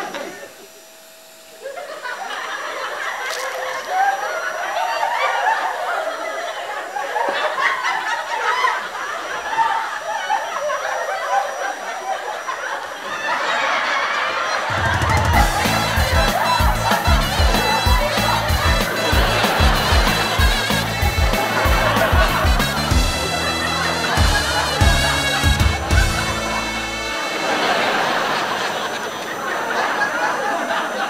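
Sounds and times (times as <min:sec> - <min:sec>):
audience laughing: 0:00.0 - 0:31.0
music with heavy beat: 0:14.9 - 0:27.4.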